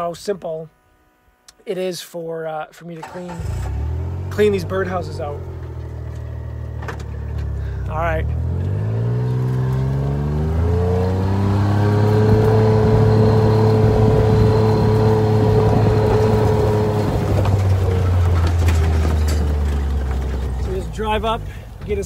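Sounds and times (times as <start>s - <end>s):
vehicle engine accelerating: 3.3s - 22.0s.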